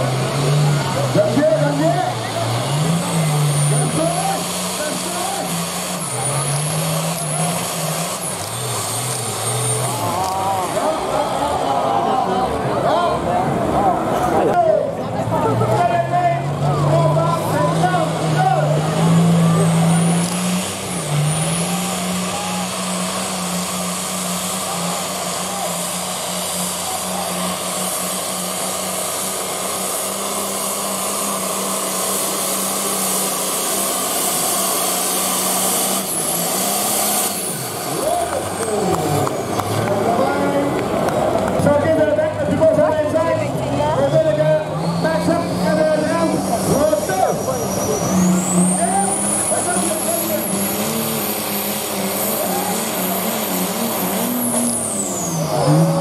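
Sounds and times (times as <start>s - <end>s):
tractor diesel engine at full throttle: 0.0s - 56.0s
tractor engine revving: 0.0s - 56.0s.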